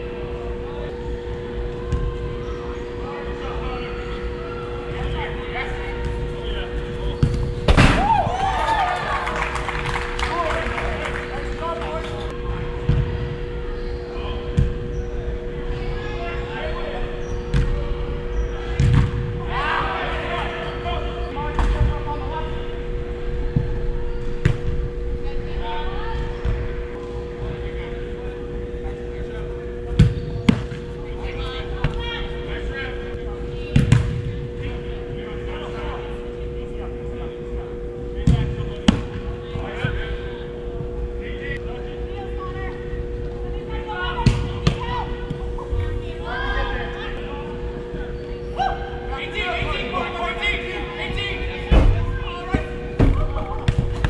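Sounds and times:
steady two-tone hum: 0.0s - 54.0s
soccer ball kicks: 7.1s - 8.3s, 18.7s - 19.4s, 33.7s - 34.4s, 44.2s - 45.4s
players shouting: 7.7s - 12.4s, 17.9s - 21.6s.

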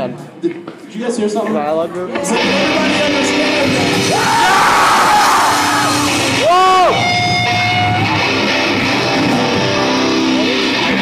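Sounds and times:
live venue noise: 0.0s - 11.0s
high held amplified band tone: 2.1s - 11.0s.

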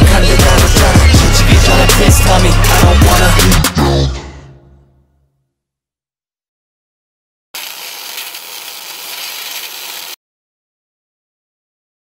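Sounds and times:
high static hiss: 7.6s - 10.2s.

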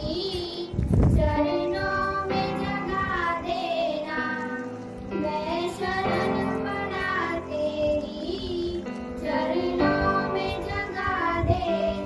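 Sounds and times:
girls singing: 0.0s - 12.0s.

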